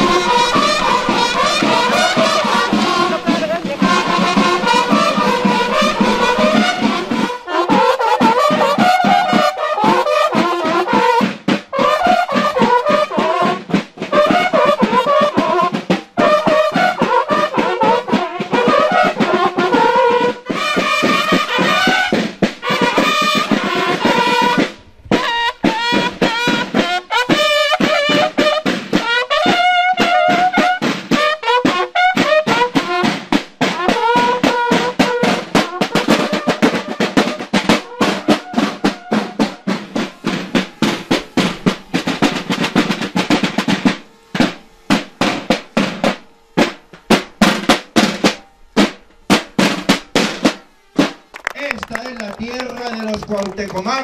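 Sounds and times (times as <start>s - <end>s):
bugles playing: 0.0s - 54.0s
snare drum rolls and beats: 0.0s - 54.0s.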